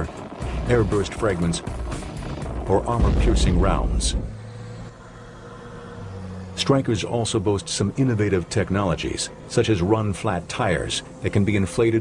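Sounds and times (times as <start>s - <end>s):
armored vehicle diesel engine: 0.0s - 12.0s.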